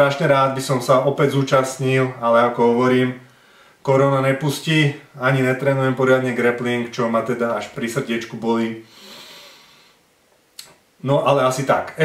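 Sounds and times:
man speaking: 0:00.0 - 0:08.9, 0:10.6 - 0:12.0
faint breath noise: 0:03.2 - 0:03.8, 0:08.8 - 0:10.1
mouth click: 0:10.5 - 0:10.8.

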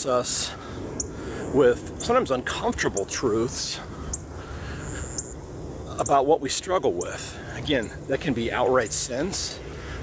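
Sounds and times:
steady low rumble: 0:00.0 - 0:10.0
high chirps: 0:04.0 - 0:06.2.

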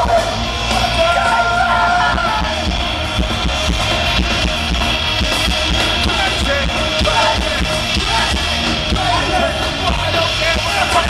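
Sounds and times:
live punk rock band: 0:00.0 - 0:11.0.

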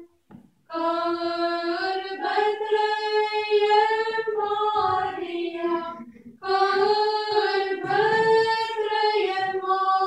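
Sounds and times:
choir singing unaccompanied chant: 0:00.7 - 0:10.0.

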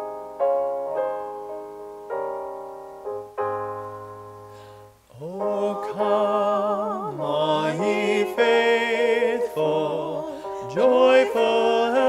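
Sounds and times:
piano chords: 0:00.0 - 0:12.0
person singing with vibrato: 0:05.1 - 0:12.0.

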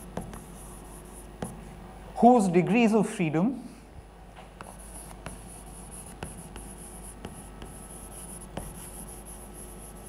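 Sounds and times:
chalk tapping on board: 0:00.0 - 0:01.6, 0:04.6 - 0:10.0
chalk scratching on chalkboard: 0:00.0 - 0:01.7, 0:04.6 - 0:10.0.

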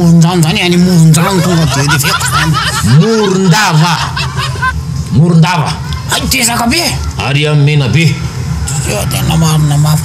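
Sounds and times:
man speaking: 0:00.0 - 0:04.2.

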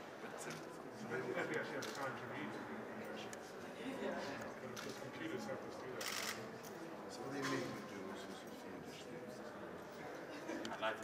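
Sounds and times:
quiet conversation: 0:00.0 - 0:11.0.

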